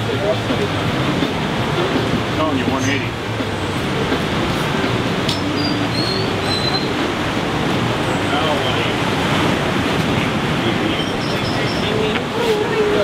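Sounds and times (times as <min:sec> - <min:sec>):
ocean surf on a beach: 0:00.0 - 0:13.0.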